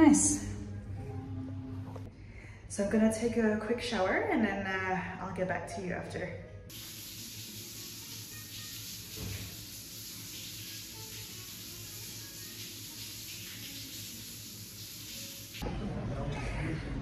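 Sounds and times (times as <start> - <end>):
shower water spray hissing: 6.7 - 15.6.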